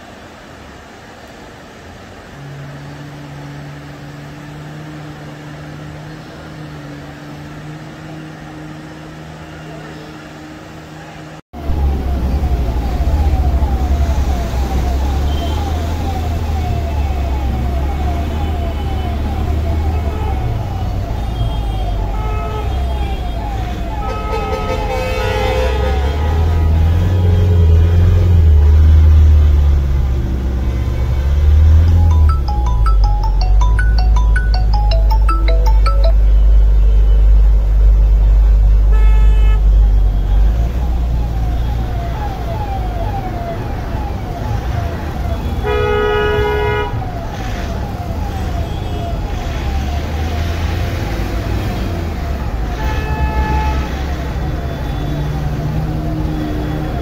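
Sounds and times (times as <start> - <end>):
rushing floodwater rumble: 0.0 - 34.5, 36.5 - 57.0
siren short rising tone: 11.6 - 22.0, 29.8 - 45.4.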